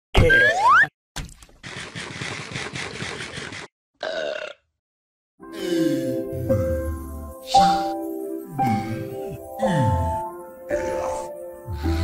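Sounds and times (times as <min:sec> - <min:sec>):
person burping: 0:04.0 - 0:04.7, 0:08.6 - 0:11.2.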